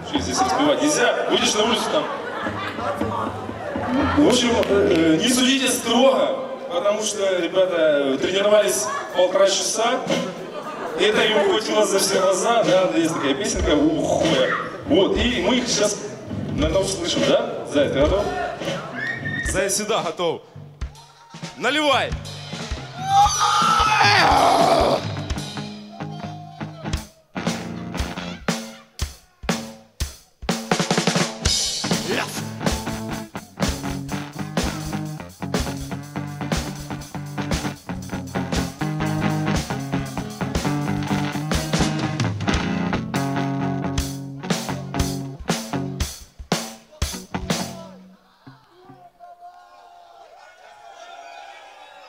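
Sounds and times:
live punk band playing: 0:20.8 - 0:48.1
loud yell: 0:22.9 - 0:25.2, 0:25.8 - 0:27.2, 0:32.0 - 0:32.5, 0:47.6 - 0:52.0
drum hits: 0:27.5 - 0:47.8.

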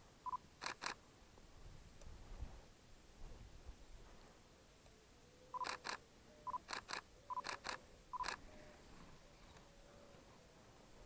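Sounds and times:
autofocus beeps: 0:00.2 - 0:00.4, 0:05.6 - 0:06.6, 0:07.3 - 0:08.4
camera shutter clicks: 0:00.6 - 0:01.0, 0:05.6 - 0:06.0, 0:06.6 - 0:08.4.

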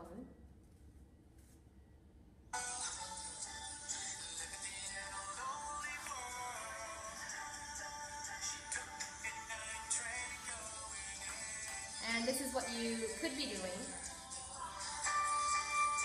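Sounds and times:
thin music from phone speaker: 0:02.6 - 0:16.0.

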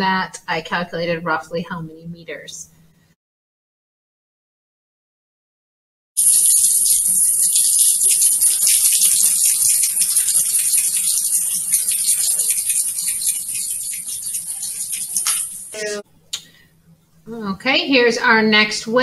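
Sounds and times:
slinky spring rattling on tile floor: 0:06.2 - 0:16.0.

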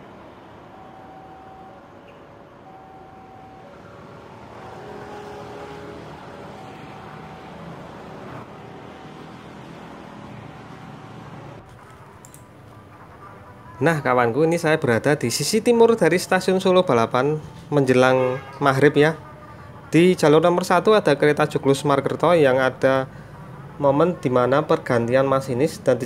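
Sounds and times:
distant train running: 0:00.0 - 0:12.1
faint two-tone signal: 0:00.6 - 0:04.0.

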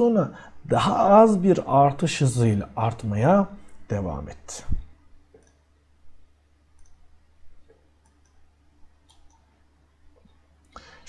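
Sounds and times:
low steady hum: 0:00.0 - 0:11.0
computer mouse clicks: 0:05.3 - 0:05.7, 0:06.8 - 0:07.0, 0:07.6 - 0:09.5.

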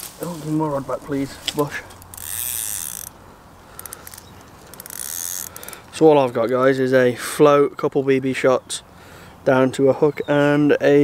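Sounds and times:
fishing reel whirring: 0:02.0 - 0:05.8
short reel clicks: 0:02.0 - 0:05.9.

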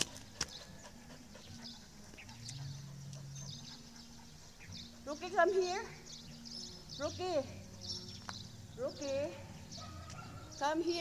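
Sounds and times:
paws and footsteps on concrete: 0:00.0 - 0:11.0.

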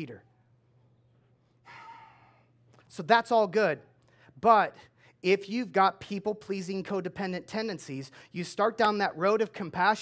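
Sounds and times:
faint steady hum: 0:00.0 - 0:10.0
man sighing: 0:01.7 - 0:02.4.

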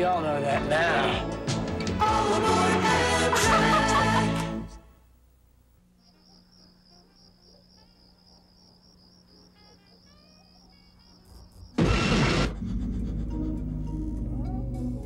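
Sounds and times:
crickets chirring: 0:05.8 - 0:12.1
sudden loud burst of noise: 0:11.8 - 0:12.8.

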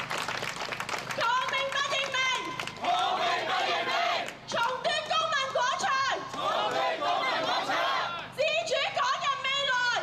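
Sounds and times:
woman shouting into microphone: 0:01.2 - 0:02.6, 0:04.5 - 0:06.3, 0:08.3 - 0:10.0
crowd chanting: 0:02.8 - 0:04.3, 0:06.3 - 0:08.3.

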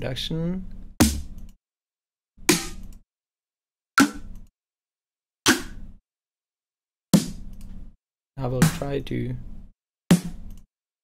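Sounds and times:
electronic snare drum hits: 0:01.0 - 0:01.3, 0:02.5 - 0:02.9, 0:04.0 - 0:04.3, 0:05.5 - 0:05.8, 0:07.2 - 0:07.4, 0:08.6 - 0:08.9, 0:10.1 - 0:10.4.

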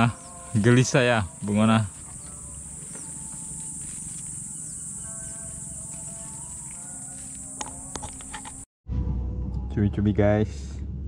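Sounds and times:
crickets chirring: 0:00.0 - 0:08.7
distant melody: 0:00.0 - 0:10.2.

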